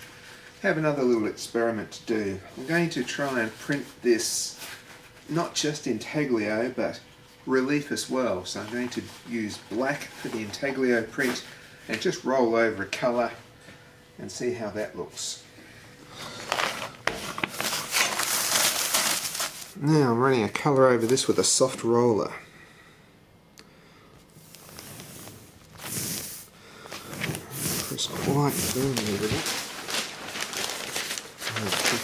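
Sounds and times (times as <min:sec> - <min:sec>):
man talking: 0:00.6 - 0:04.6, 0:05.3 - 0:13.4, 0:14.2 - 0:15.5, 0:19.8 - 0:22.4, 0:27.7 - 0:29.6, 0:31.5 - 0:32.0
newspaper rustling and crinkling: 0:02.6 - 0:06.7, 0:08.4 - 0:12.2, 0:16.2 - 0:19.8, 0:20.4 - 0:21.7, 0:26.9 - 0:32.0.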